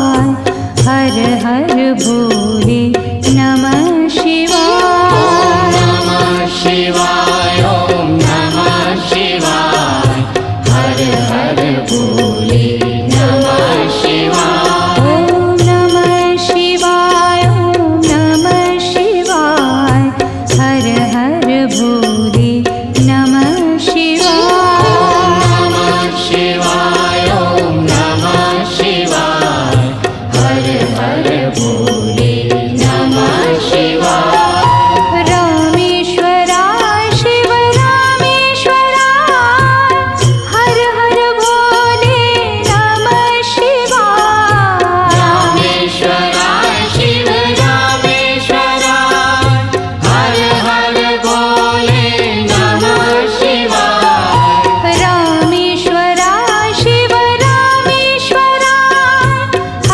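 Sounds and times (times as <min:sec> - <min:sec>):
devotional chanting: 0:00.0 - 0:59.9
instrumental accompaniment: 0:00.0 - 0:59.9
mantra chanting: 0:24.3 - 0:28.5.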